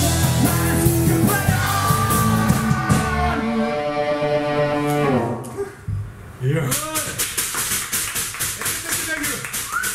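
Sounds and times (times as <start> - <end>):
live rock song: 0.0 - 5.3
audience clapping: 6.7 - 9.9.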